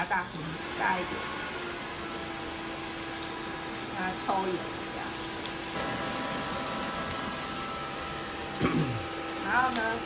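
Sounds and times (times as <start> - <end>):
extraction fan hissing: 0.0 - 10.0.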